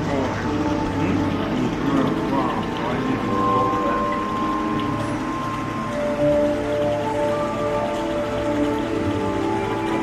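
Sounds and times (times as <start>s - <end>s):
ambient music with held notes: 0.0s - 10.0s
moving water: 0.0s - 10.0s.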